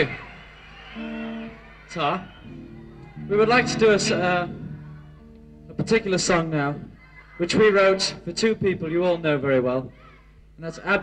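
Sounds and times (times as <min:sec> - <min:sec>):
guitar note: 0:01.0 - 0:01.6, 0:02.4 - 0:10.0
man's voice: 0:03.3 - 0:04.6, 0:05.7 - 0:09.9.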